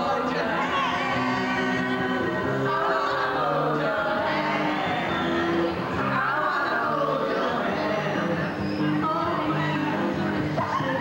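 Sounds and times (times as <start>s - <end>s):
young women singing: 0.0s - 8.4s, 9.0s - 11.0s
music: 0.0s - 11.0s.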